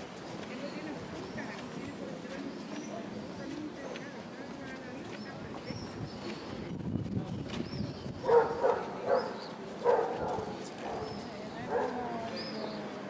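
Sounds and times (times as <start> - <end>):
people talking: 0.4 - 13.0
dog barking: 8.2 - 12.0.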